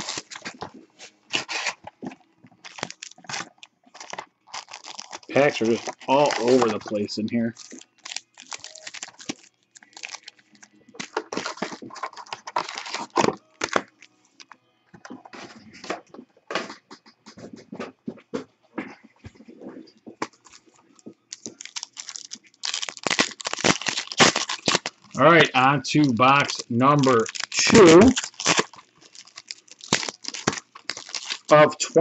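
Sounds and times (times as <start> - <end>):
foil wrappers crinkling: 0.0 - 14.6, 19.0 - 32.0.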